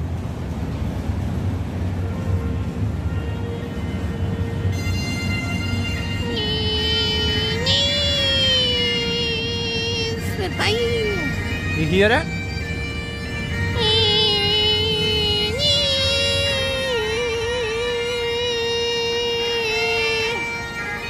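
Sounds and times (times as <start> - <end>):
bagpipe drone: 2.0 - 21.0
bagpipe chanter melody: 3.0 - 21.0.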